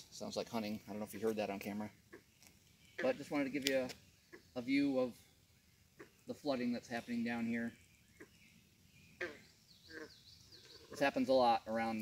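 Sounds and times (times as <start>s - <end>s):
short animal calls: 9.2s - 11.1s.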